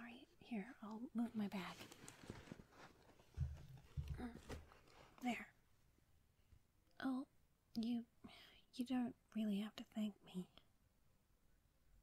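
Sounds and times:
dull low thump: 0:03.3 - 0:04.4.

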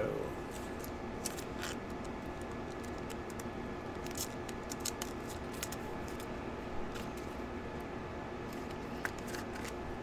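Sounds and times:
cards flipped through by hand: 0:00.5 - 0:07.3, 0:08.5 - 0:09.8.

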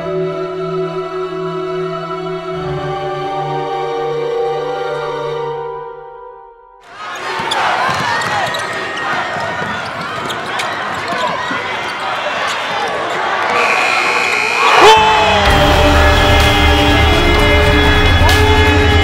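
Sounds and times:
music: 0:00.0 - 0:06.8, 0:15.0 - 0:19.0
sneakers squeaking on hardwood: 0:06.9 - 0:13.7
players and crowd shouting: 0:06.9 - 0:19.0
basketball bouncing: 0:07.2 - 0:13.1.

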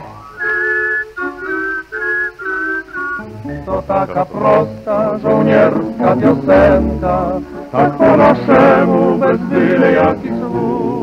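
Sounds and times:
tango band accompaniment: 0:00.0 - 0:11.0
whistled melody: 0:00.1 - 0:04.0.

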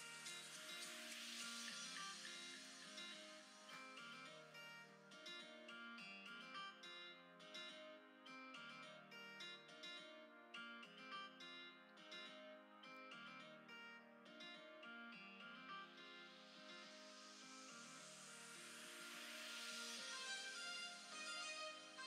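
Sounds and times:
plucked guitar music: 0:00.0 - 0:17.0.

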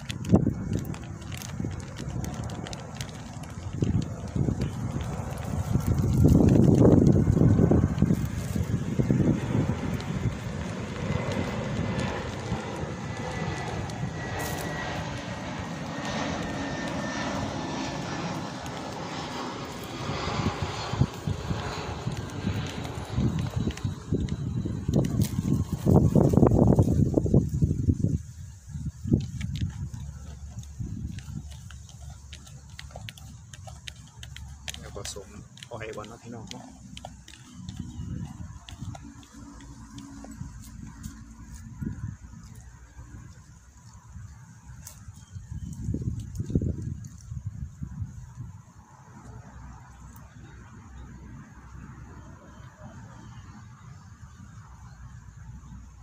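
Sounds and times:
jet airliner rumble: 0:00.0 - 0:56.0
faint high whine: 0:04.7 - 0:47.3
hands mixing powder in plastic tub: 0:30.2 - 0:38.0.

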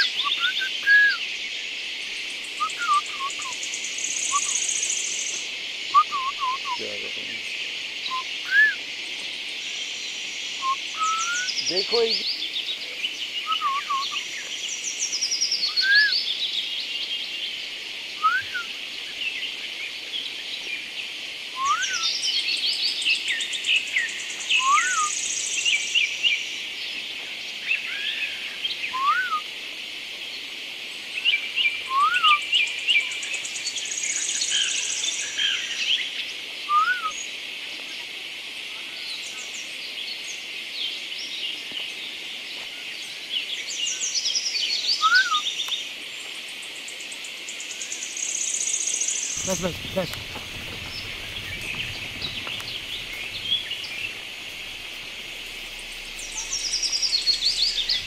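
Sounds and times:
birds chirping and trilling: 0:00.0 - 0:29.4, 0:46.7 - 0:58.0
short rising whistled bird note: 0:10.6 - 0:11.6, 0:18.2 - 0:18.7, 0:21.6 - 0:22.1, 0:49.4 - 0:58.0
high buzzing bird trill: 0:49.0 - 0:58.0.

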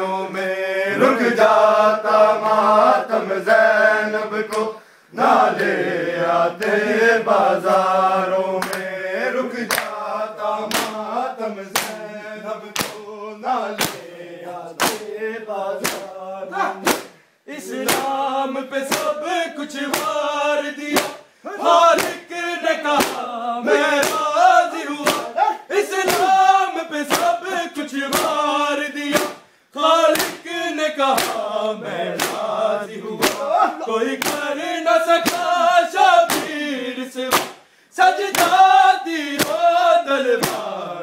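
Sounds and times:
men chanting in unison: 0:00.0 - 0:41.0
hands slapping bare chests: 0:08.6 - 0:08.9, 0:09.7 - 0:10.0, 0:10.6 - 0:11.1, 0:11.7 - 0:12.1, 0:12.7 - 0:13.1, 0:13.8 - 0:14.1, 0:14.8 - 0:15.2, 0:15.8 - 0:18.2, 0:18.8 - 0:19.2, 0:19.8 - 0:21.2, 0:21.9 - 0:22.3, 0:22.9 - 0:27.4, 0:28.1 - 0:29.4, 0:30.1 - 0:31.5, 0:32.1 - 0:32.6, 0:33.2 - 0:34.5, 0:35.1 - 0:35.6, 0:36.2 - 0:36.6, 0:37.2 - 0:37.6, 0:38.3 - 0:38.7, 0:39.3 - 0:39.7, 0:40.4 - 0:40.7.

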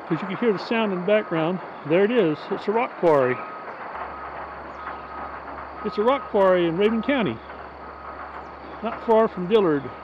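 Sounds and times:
distant machinery rumble: 0:00.0 - 0:10.0.

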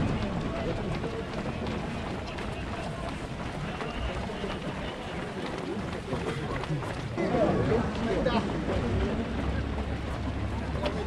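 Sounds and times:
runners' footsteps on asphalt: 0:00.0 - 0:11.0.

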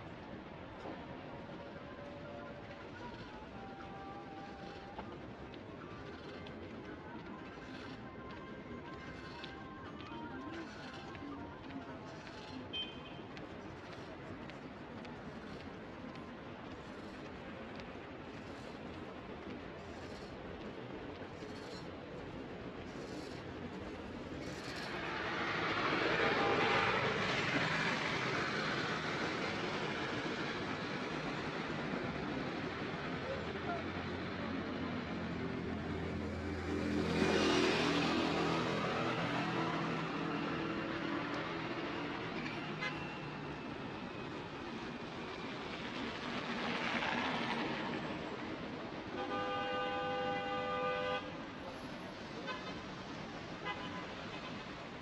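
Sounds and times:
city traffic: 0:00.0 - 0:55.0.

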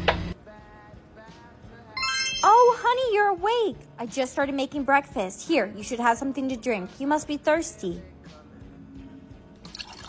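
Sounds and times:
quiet background music: 0:00.2 - 0:10.0.

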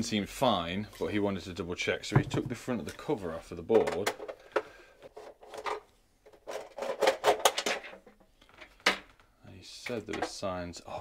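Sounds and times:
plastic cover rattling and scraping: 0:03.7 - 0:09.2.

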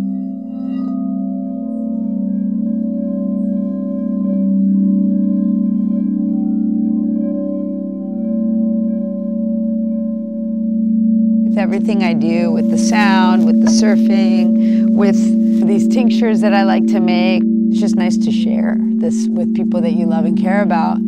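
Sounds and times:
singing bowl ringing: 0:00.0 - 0:21.0.

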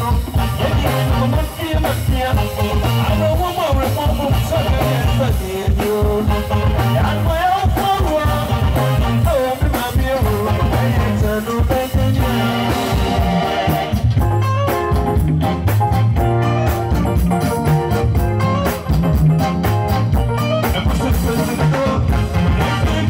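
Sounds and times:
man singing: 0:00.0 - 0:14.0, 0:20.6 - 0:23.0
busy drumming: 0:00.0 - 0:23.0
live band playing: 0:00.0 - 0:23.0.

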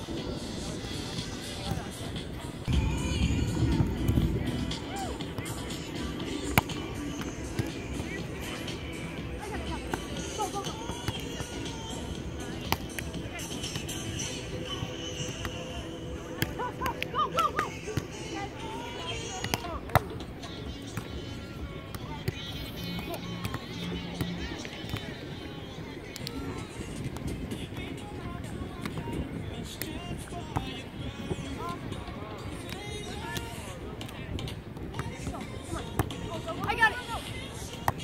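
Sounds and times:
background music: 0:00.0 - 0:38.0
outdoor noise: 0:00.0 - 0:38.0
voices: 0:00.0 - 0:38.0.

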